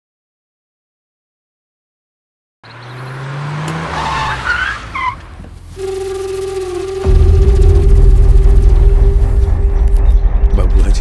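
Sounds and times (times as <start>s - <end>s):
car engine: 2.6s - 11.0s
tyre squeals: 2.7s - 7.1s.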